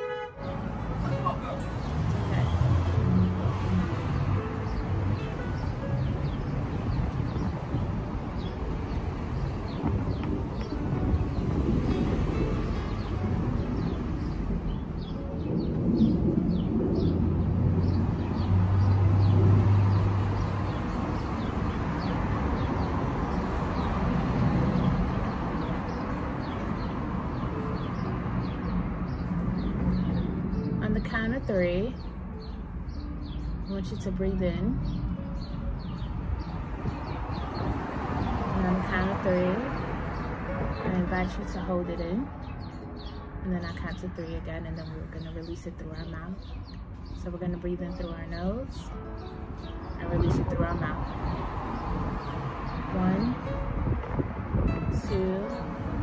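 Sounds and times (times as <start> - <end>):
vehicles passing: 0.0 - 56.0.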